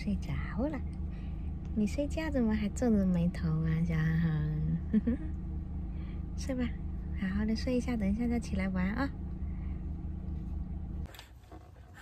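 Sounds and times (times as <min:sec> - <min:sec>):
car rumble from inside cabin: 0:00.0 - 0:12.0.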